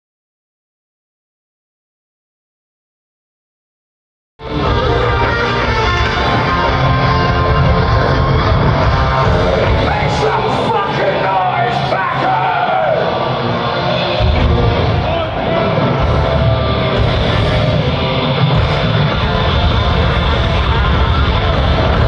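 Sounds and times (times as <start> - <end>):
live rock band playing: 4.4 - 22.0
singer's voice: 4.5 - 22.0.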